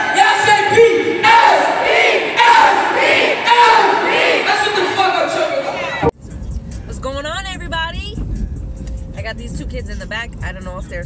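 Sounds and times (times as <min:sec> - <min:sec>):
car rumbling on road: 0:06.2 - 0:11.0
woman talking: 0:06.9 - 0:08.2, 0:09.2 - 0:11.0.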